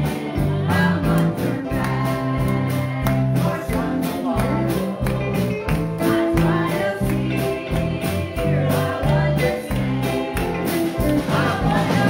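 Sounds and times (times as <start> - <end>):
bass line: 0.0 - 12.0
piano: 0.0 - 12.0
women singing: 0.0 - 12.0.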